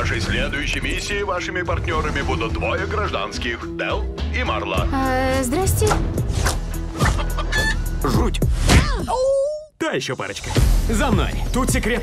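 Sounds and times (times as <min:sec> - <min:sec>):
film trailer music: 0:00.0 - 0:09.2, 0:09.8 - 0:12.0.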